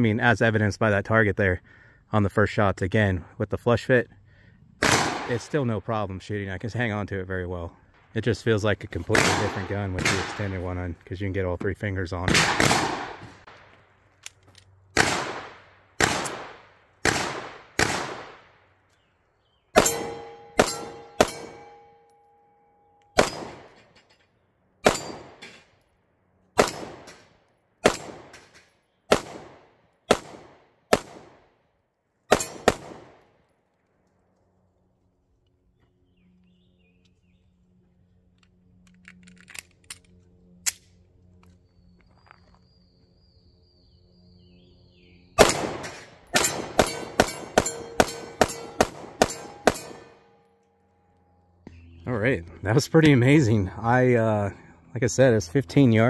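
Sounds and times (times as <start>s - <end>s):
pistol shots: 4.8s - 5.4s, 9.1s - 10.6s, 12.2s - 13.6s, 14.9s - 18.5s, 19.7s - 22.0s, 23.1s - 23.8s, 24.8s - 25.6s, 26.6s - 28.5s, 29.1s - 31.5s, 32.3s - 33.3s, 45.4s - 50.4s
steel target ringing: 19.8s - 23.7s, 46.4s - 50.4s.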